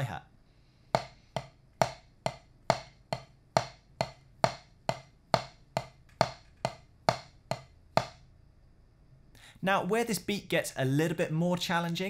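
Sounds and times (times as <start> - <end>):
drumstick striking practice pad: 0.9 - 8.2.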